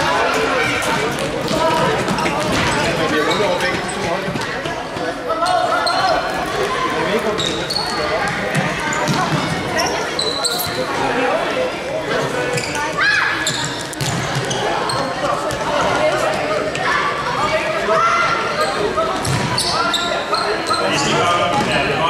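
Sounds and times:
shoes squeaking: 7.3 - 11.1, 12.4 - 15.6, 18.6 - 21.1.

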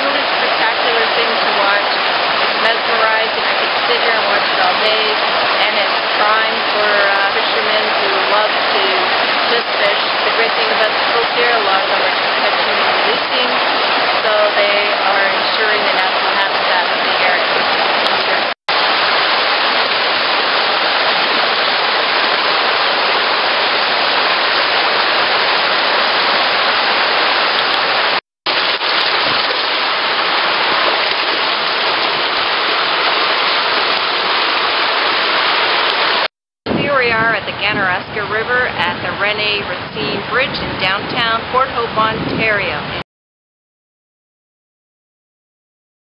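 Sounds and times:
river water rushing over rapids: 0.0 - 36.3.

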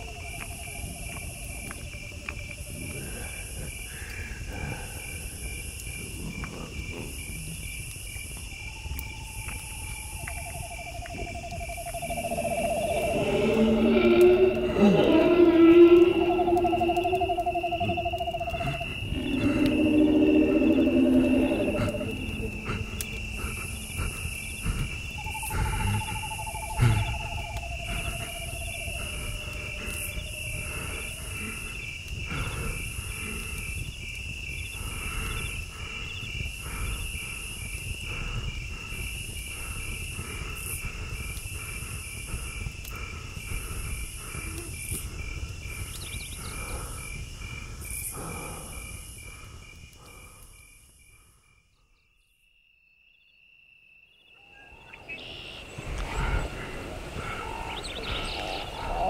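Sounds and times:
insect chirping trill: 0.0 - 59.0
long hooting tones: 10.7 - 31.4.

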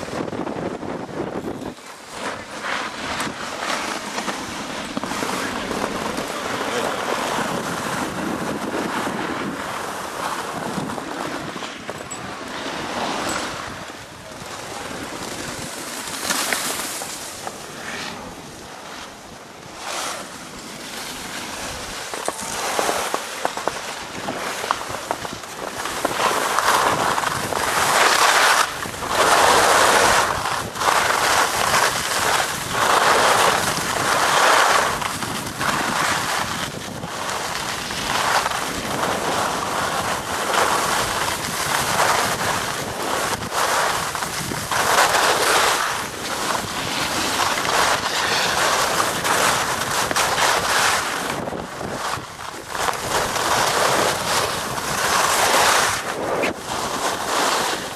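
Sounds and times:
skis scraping on packed snow: 0.0 - 57.9
wind rushing over microphone: 0.0 - 57.9.

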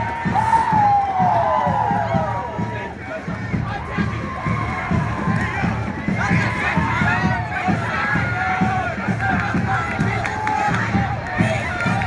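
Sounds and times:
crowd shouting and cheering: 0.0 - 12.0
low thumping beat: 0.0 - 12.0.

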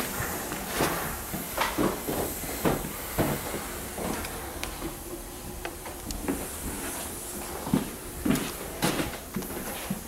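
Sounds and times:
steady hiss: 0.0 - 10.0
footsteps on hard floor: 0.2 - 5.0, 6.2 - 10.0.

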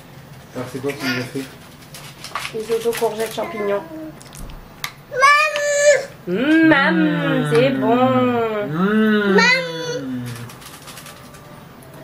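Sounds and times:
child humming: 5.2 - 10.5.

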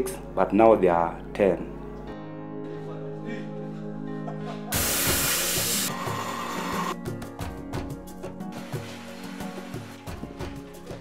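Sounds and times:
background music steady tones: 0.0 - 11.0
loud hiss: 4.8 - 6.9.

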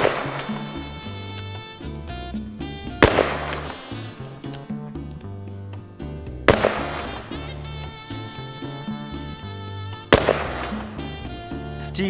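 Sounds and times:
background music: 0.0 - 12.0
revolver shots: 6.5 - 7.4.

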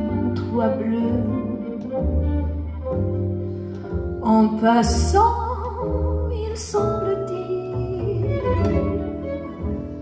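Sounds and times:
double bass notes: 0.0 - 10.0
sustained violin: 0.0 - 10.0.

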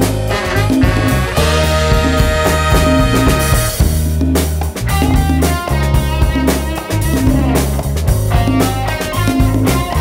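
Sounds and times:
electric guitar: 0.0 - 10.0
live band playing instrumental: 0.0 - 10.0.

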